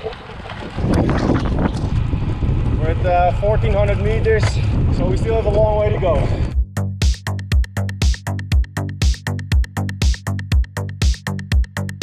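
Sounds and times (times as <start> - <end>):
tyres rolling on gravel: 0.0 - 4.2
wind buffeting microphone: 0.0 - 6.6.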